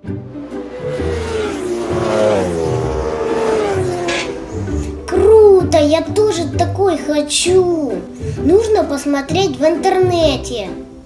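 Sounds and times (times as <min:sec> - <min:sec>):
racing motorcycle passing at high revs: 0:00.0 - 0:06.7.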